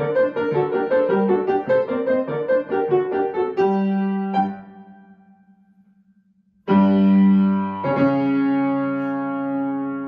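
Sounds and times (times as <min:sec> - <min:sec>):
piano chords: 0:00.0 - 0:05.6, 0:06.6 - 0:10.0.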